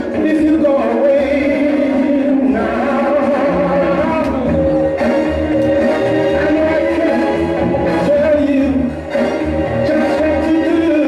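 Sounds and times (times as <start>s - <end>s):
soul record over sound system: 0.0s - 11.0s.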